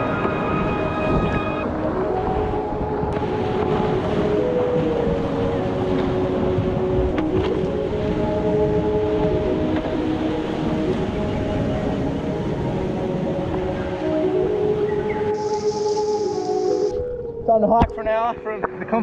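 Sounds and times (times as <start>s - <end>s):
background music of held notes: 0.0s - 19.0s.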